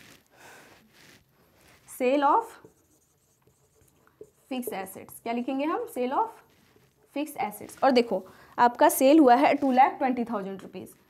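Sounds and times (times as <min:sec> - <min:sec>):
marker writing on whiteboard: 0:00.8 - 0:10.2.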